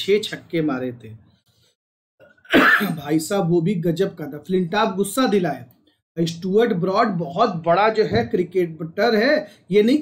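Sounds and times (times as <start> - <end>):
man speaking: 0.0 - 1.4, 2.8 - 10.0
man clearing throat: 2.2 - 3.1.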